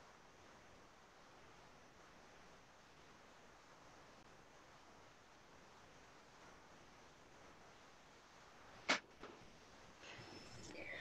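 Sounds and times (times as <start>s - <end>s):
faint audio line hiss: 0.0s - 11.0s.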